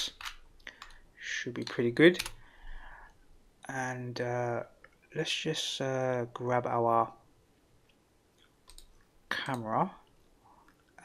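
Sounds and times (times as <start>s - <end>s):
computer mouse clicks: 0.1s - 1.0s, 7.9s - 11.0s.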